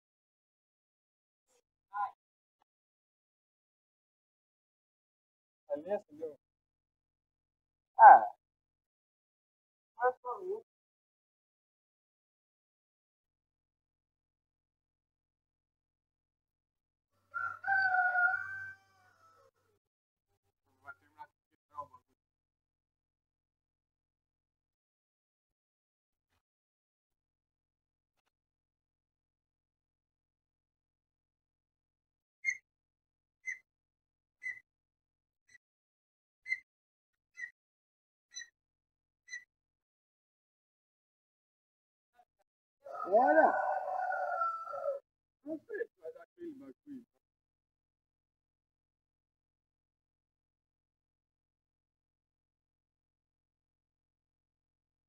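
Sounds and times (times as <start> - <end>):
rooster crowing: 17.2 - 19.8, 42.8 - 45.0
man speaking: 45.5 - 47.1.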